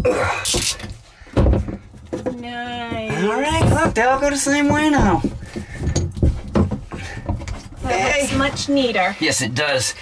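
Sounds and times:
hands knocking on valves: 0.8s - 8.6s.

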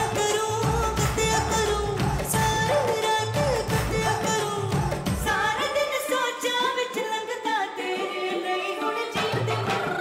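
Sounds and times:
woman singing into a microphone: 0.0s - 10.0s.

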